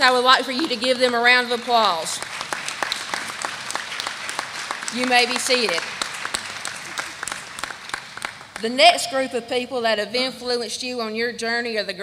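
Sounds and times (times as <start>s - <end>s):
audience applauding: 0.5s - 8.7s.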